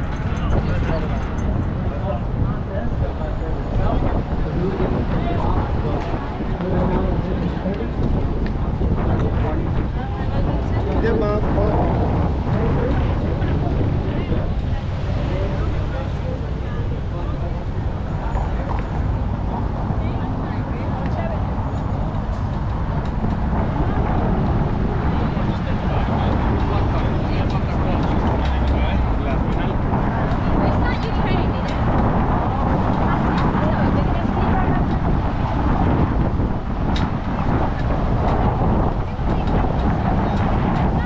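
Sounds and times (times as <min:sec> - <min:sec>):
motor traffic: 0:00.0 - 0:41.0
passers-by talking: 0:00.0 - 0:41.0.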